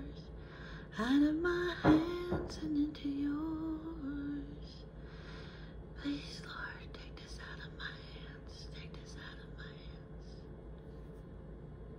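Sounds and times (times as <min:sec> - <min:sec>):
woman whispering: 0:06.0 - 0:10.4.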